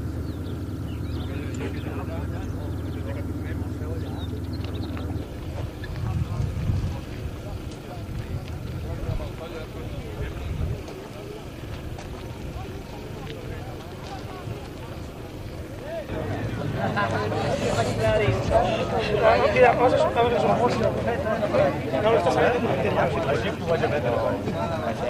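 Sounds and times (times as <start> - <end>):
uneven low rumble: 0.0 - 18.8
people talking indistinctly: 0.0 - 25.0.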